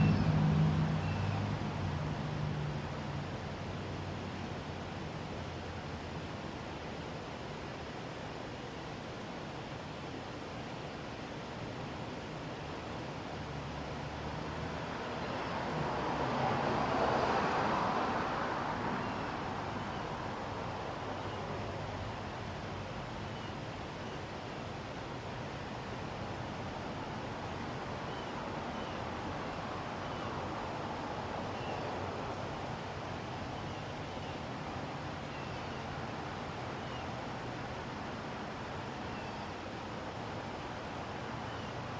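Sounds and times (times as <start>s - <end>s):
vehicle engine hum: 0.0s - 3.4s
passing road traffic: 0.0s - 3.8s, 13.6s - 20.9s
outdoor background hiss: 0.0s - 41.9s.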